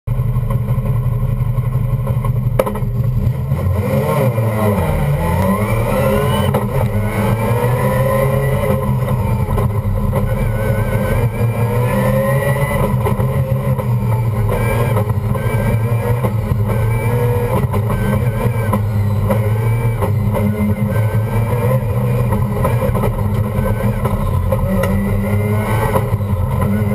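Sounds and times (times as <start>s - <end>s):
rotary car engine revving: 1.6s - 26.9s.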